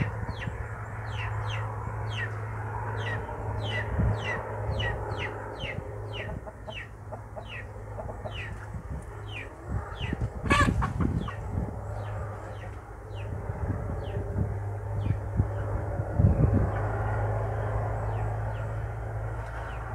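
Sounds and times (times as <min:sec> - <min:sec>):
steady low hum: 0:00.0 - 0:19.9
chicken squawk: 0:09.3 - 0:11.4.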